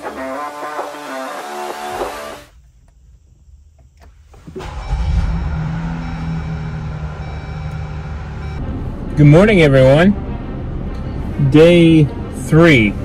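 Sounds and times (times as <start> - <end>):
music: 0.0 - 2.4
car engine starting and idling: 1.9 - 13.0.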